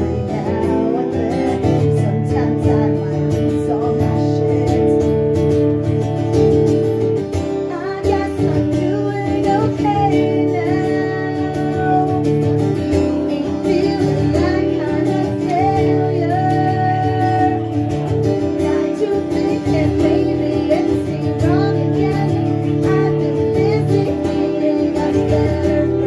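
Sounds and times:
strummed acoustic guitar: 0:00.0 - 0:26.0
woman singing: 0:00.0 - 0:26.0.

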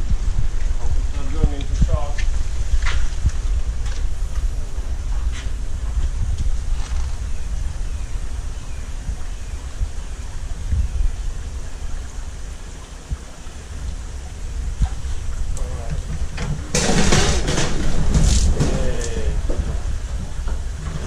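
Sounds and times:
fish splashing and thrashing: 0:13.7 - 0:21.0.

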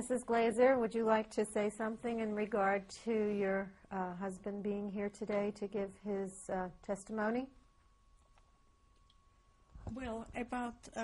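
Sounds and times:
woman speaking: 0:00.0 - 0:07.6
faint high hum: 0:00.0 - 0:11.0.

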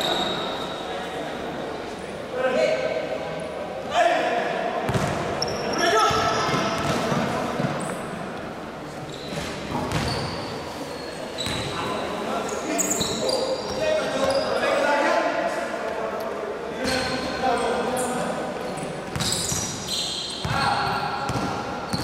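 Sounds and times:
sneaker squeaks: 0:00.0 - 0:01.1, 0:04.9 - 0:08.2, 0:09.0 - 0:14.8, 0:16.8 - 0:22.0.

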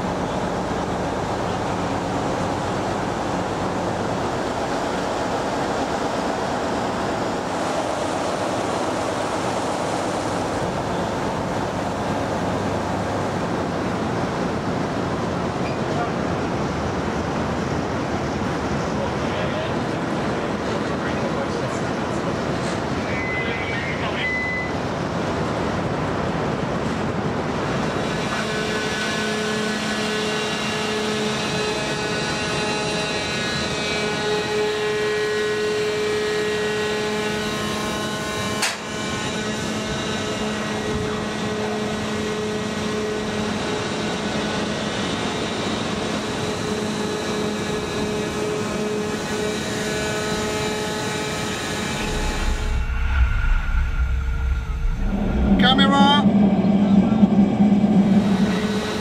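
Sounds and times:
wind and sea noise: 0:00.0 - 0:36.4, 0:37.5 - 0:59.0
short beep: 0:24.2 - 0:24.8
machinery humming: 0:45.0 - 0:59.0.

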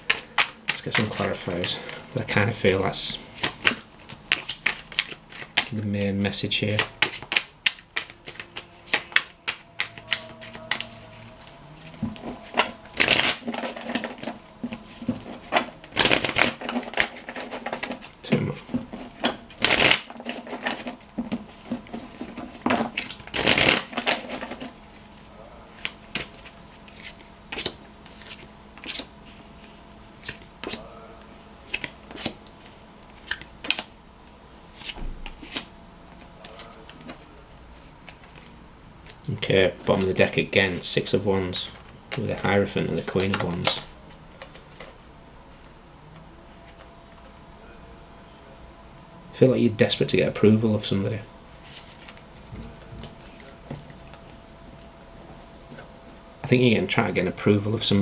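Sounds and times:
cards being shuffled: 0:00.0 - 0:30.9, 0:31.6 - 0:34.0, 0:34.7 - 0:39.2, 0:41.6 - 0:45.0, 0:51.6 - 0:54.4.

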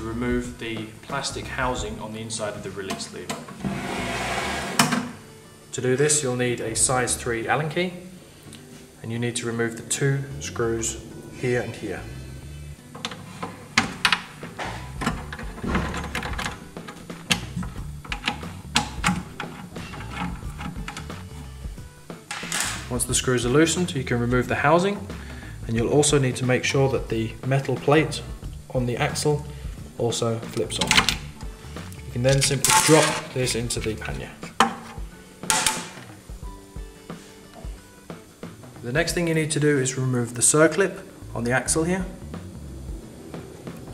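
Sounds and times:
background music: 0:00.0 - 0:43.9.

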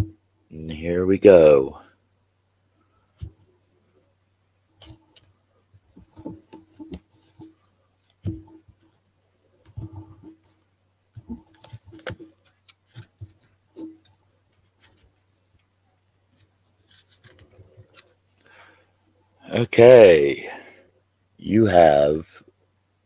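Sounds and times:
cards shuffled on cloth table: 0:11.2 - 0:15.1, 0:16.3 - 0:18.5.

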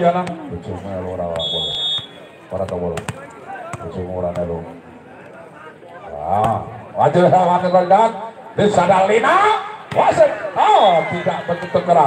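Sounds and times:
referee's whistle: 0:01.3 - 0:02.4, 0:07.4 - 0:08.2.

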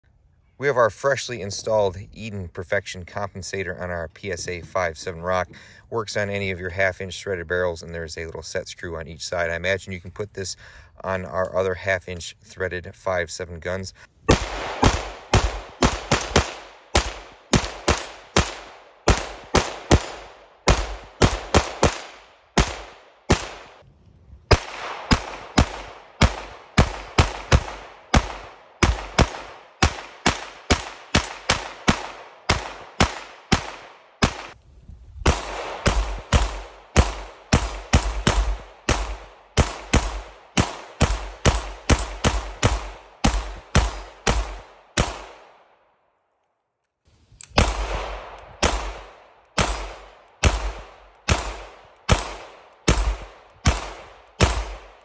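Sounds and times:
pistol shots in fast strings: 0:14.3 - 0:23.8, 0:24.5 - 0:34.6, 0:35.3 - 0:45.5, 0:47.6 - 0:55.0.

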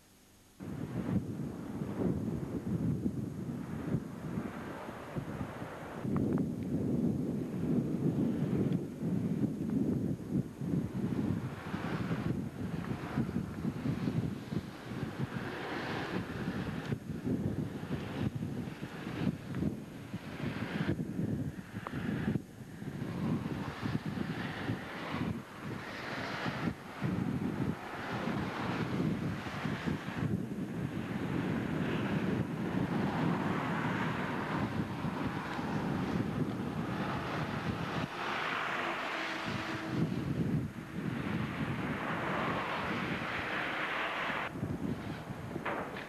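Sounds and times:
wind buffeting microphone: 0:00.6 - 0:46.0
road traffic passing: 0:03.5 - 0:06.8, 0:10.3 - 0:46.0.

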